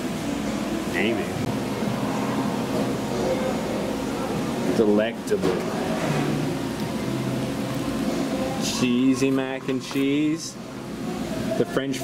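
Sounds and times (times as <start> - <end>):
restaurant room hum and hiss: 0.0 - 12.0.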